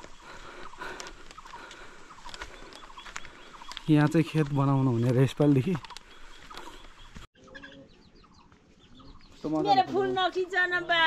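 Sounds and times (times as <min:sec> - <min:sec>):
small birds chirping: 0:00.0 - 0:10.7
faint chickens clucking: 0:05.8 - 0:09.9.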